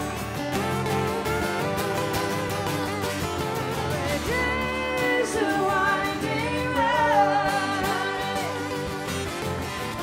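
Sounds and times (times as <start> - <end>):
live rock band playing: 0.0 - 10.0
person singing long sliding notes: 3.7 - 10.0.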